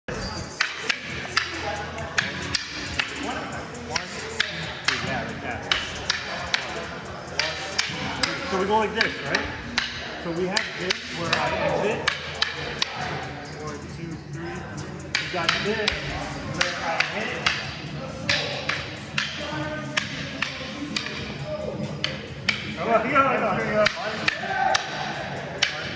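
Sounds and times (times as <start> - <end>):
sticks clacking together: 0.5 - 1.6, 2.2 - 13.2, 15.1 - 22.8, 23.8 - 25.9.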